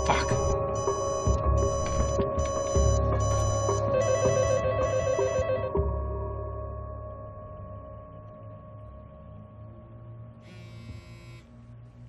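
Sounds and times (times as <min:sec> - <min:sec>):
phone ringing: 0:00.0 - 0:05.8
sustained music score: 0:00.0 - 0:12.0.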